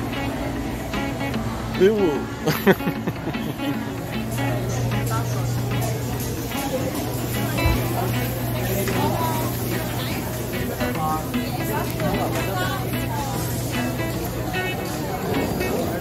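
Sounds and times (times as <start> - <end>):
chatter of many voices: 0.0 - 16.0
music playing: 0.0 - 16.0.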